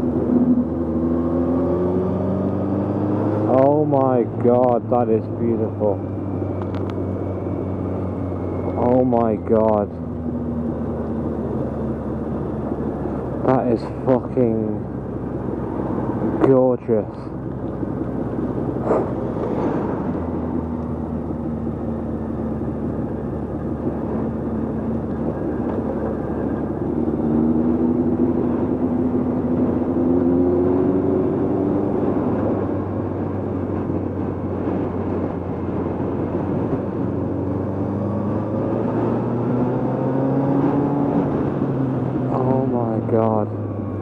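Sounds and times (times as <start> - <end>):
motorcycle engine accelerating: 0.0 - 4.0, 9.9 - 16.4, 17.3 - 44.0
rushing wind noise: 5.6 - 44.0.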